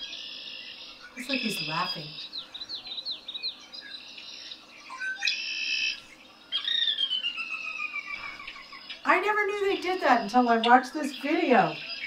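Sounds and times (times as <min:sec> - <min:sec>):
bird singing: 0:00.0 - 0:12.0.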